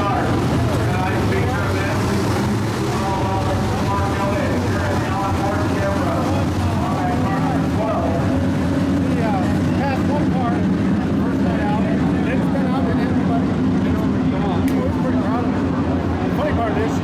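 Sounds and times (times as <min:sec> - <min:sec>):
race car engines droning: 0:00.0 - 0:17.0
voices: 0:00.0 - 0:17.0.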